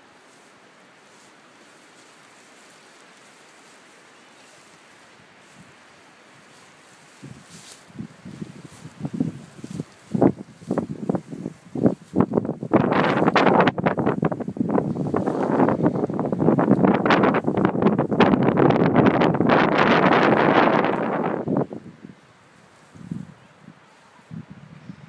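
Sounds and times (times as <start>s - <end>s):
grass rustling and crackling: 0.0s - 25.0s.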